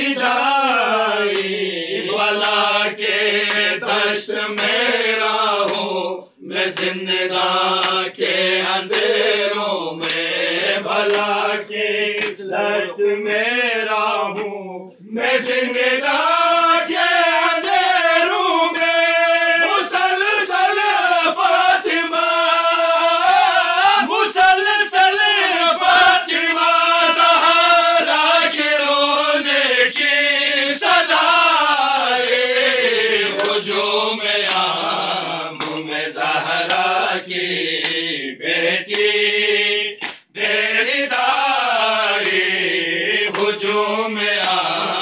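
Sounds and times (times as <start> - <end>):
men chanting a lament: 0.0 - 45.0.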